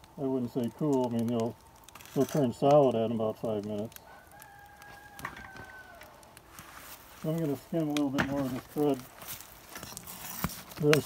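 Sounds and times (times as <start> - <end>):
rooster crowing faintly: 4.0 - 6.3.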